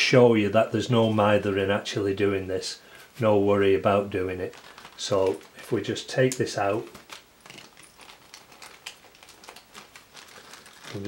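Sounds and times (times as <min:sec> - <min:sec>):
plastic zip bag crinkling: 0:04.2 - 0:11.0.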